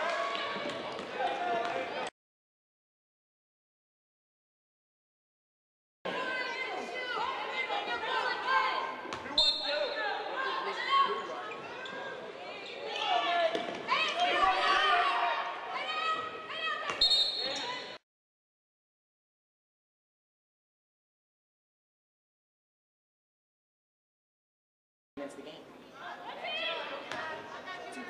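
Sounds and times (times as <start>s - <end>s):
thin crowd in arena: 0.0s - 2.1s, 6.1s - 18.0s.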